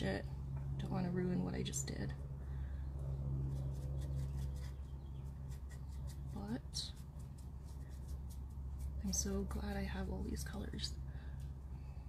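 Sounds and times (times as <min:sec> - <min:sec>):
steady low hum: 0:00.0 - 0:12.0
paintbrush bristles ticking: 0:03.5 - 0:10.6.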